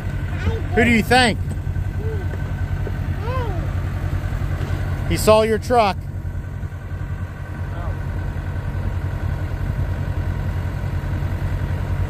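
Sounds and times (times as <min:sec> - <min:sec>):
tractor diesel engine idling: 0:00.0 - 0:12.0
toddler vocalizing: 0:01.9 - 0:02.5, 0:03.1 - 0:03.8.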